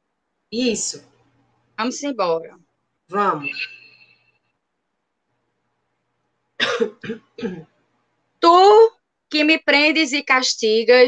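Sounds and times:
woman coughing: 6.6s - 7.8s.

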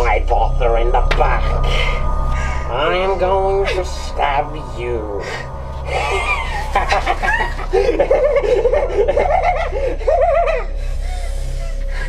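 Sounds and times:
person laughing: 5.9s - 11.8s.

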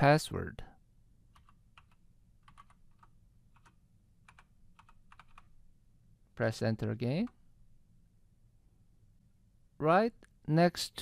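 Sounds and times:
computer keyboard keystrokes: 1.3s - 5.5s.

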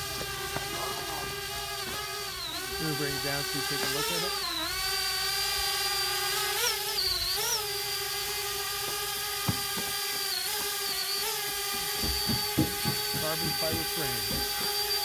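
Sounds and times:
drone propellers whining: 0.0s - 15.0s
short sharp knocks: 9.4s - 9.9s, 12.0s - 14.7s.

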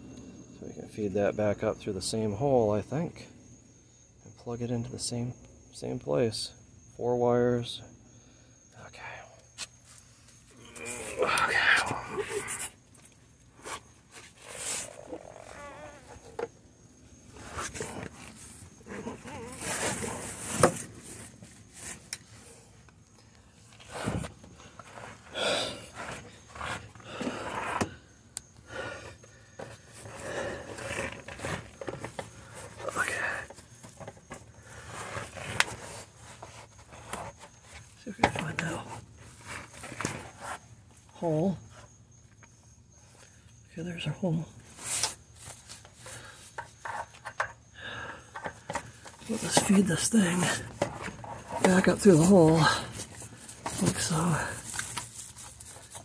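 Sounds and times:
scraping and knocking under car: 48.3s - 56.0s.

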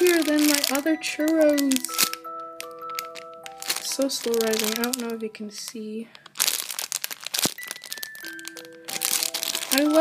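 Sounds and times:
background music: 0.0s - 10.0s
plastic packaging crinkling: 0.0s - 10.0s.

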